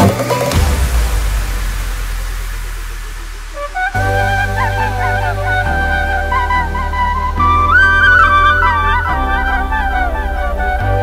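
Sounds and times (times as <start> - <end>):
deep bass rumble: 0.0 - 11.0
hiss-like noise wash: 0.4 - 7.2.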